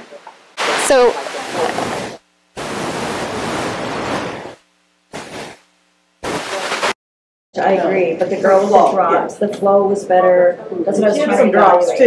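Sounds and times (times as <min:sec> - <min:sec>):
loud even hiss: 0:00.0 - 0:07.0.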